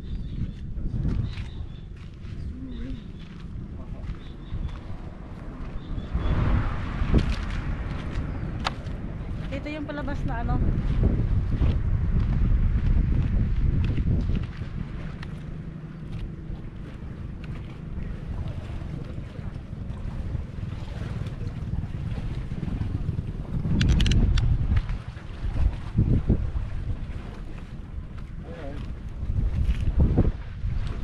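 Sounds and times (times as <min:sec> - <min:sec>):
crackles from wind gusts: 0:00.0 - 0:31.0
wind buffeting microphone: 0:00.0 - 0:31.0.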